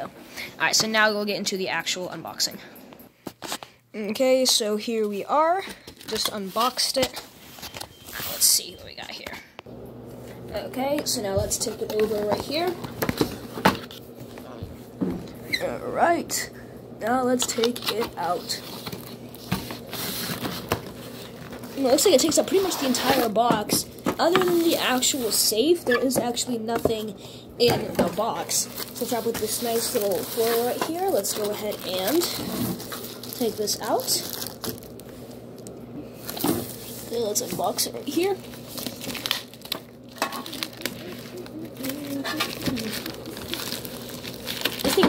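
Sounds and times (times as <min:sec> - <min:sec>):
plastic wrapped box handling: 0:17.6 - 0:23.6, 0:28.2 - 0:35.1, 0:36.2 - 0:45.0.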